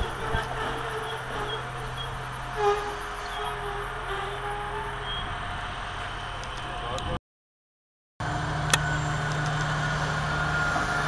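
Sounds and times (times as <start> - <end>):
diesel railcar engine hum: 0.0 - 7.2, 8.2 - 11.0.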